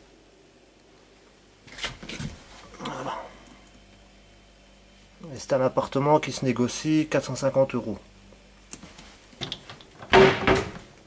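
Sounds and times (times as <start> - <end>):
cabinet door knocks and scraping: 10.1 - 10.9.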